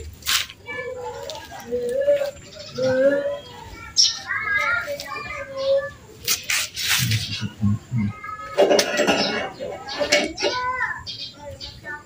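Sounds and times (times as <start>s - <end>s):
birds chirping: 0.7s - 12.0s
rough scraping rubs: 6.2s - 7.5s.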